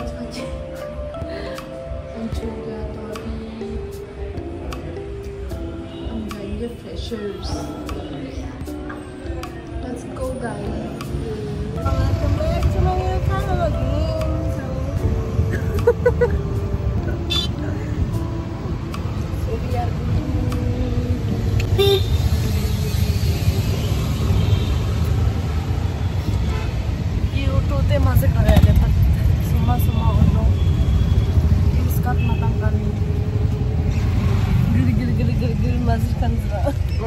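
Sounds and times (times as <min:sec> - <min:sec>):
auto-rickshaw engine and road rumble: 0:00.0 - 0:37.0.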